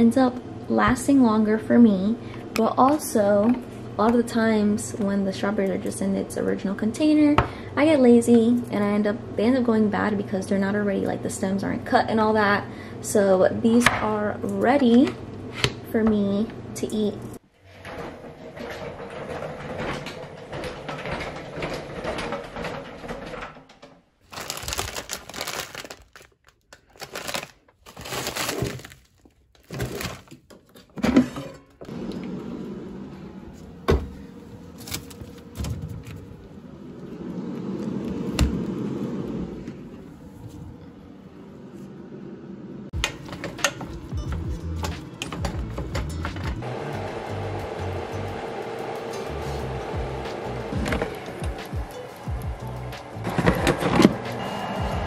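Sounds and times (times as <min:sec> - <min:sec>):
plastic packaging crinkling: 0:24.2 - 0:30.5
background music with beat: 0:44.0 - 0:46.6, 0:49.3 - 0:55.0.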